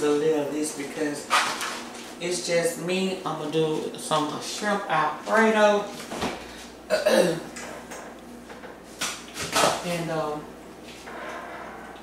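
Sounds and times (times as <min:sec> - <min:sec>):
woman clearing her throat: 0:06.9 - 0:07.5.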